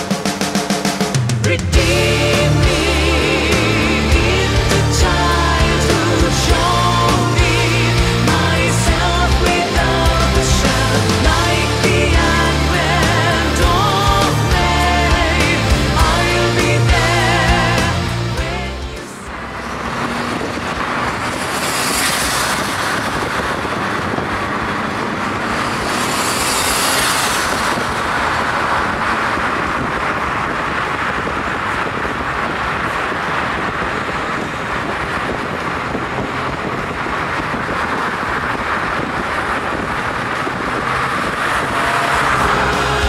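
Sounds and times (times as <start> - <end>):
road and engine noise: 0.0 - 43.0.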